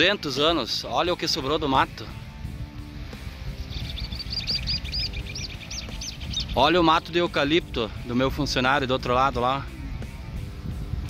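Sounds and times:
bird whistling short notes: 0:03.6 - 0:06.6.

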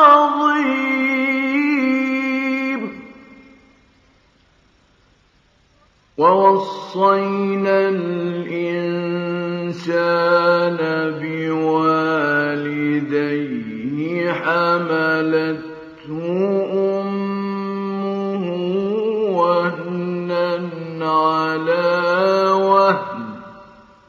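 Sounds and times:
man chanting recitation: 0:00.0 - 0:03.3, 0:06.2 - 0:23.8.

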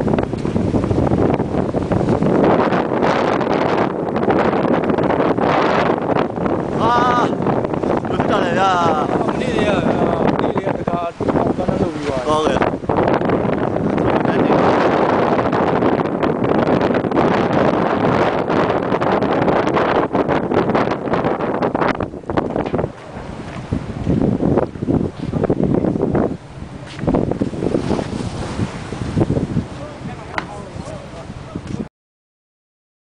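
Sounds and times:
wind buffeting microphone: 0:00.0 - 0:31.9.

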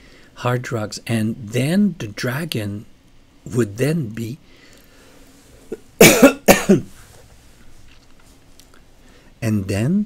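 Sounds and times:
man coughing: 0:05.7 - 0:06.9.

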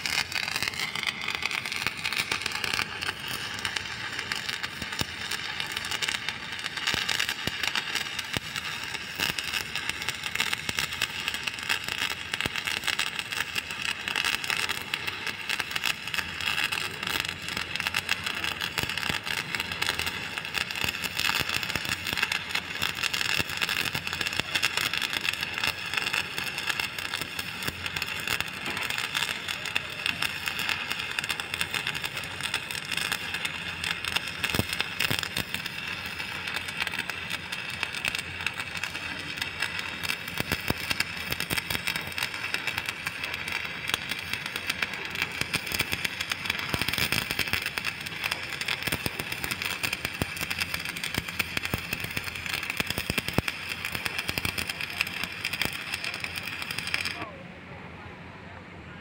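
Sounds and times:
welding arc crackling and sizzling: 0:00.0 - 0:57.3
sharp arc pops: 0:32.7 - 0:57.3.

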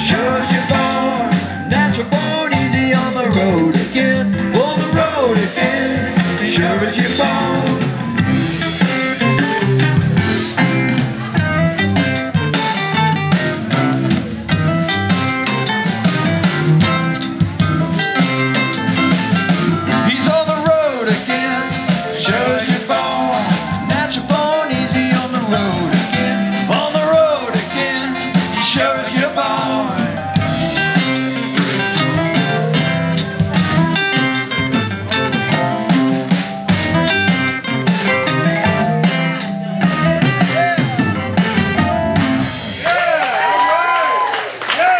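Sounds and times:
strummed acoustic guitars: 0:00.0 - 0:42.7
electric bass: 0:00.0 - 0:43.5
bending lead guitar line: 0:00.0 - 0:43.6.

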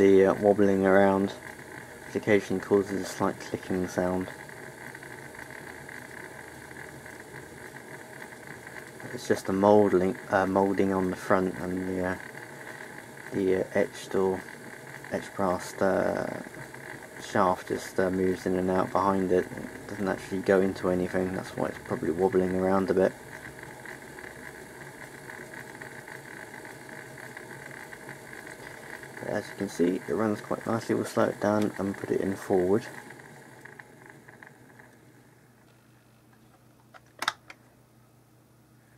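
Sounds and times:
model train motor whirring: 0:00.0 - 0:35.0.

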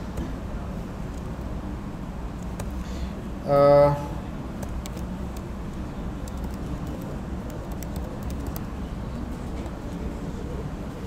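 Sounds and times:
keyboard keystroke clicks: 0:04.6 - 0:05.4, 0:06.2 - 0:08.7.

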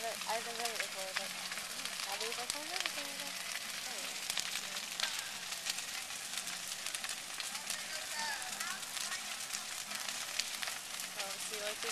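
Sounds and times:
bonfire crackling and popping: 0:00.0 - 0:11.9
hiss of flame: 0:00.0 - 0:11.9.

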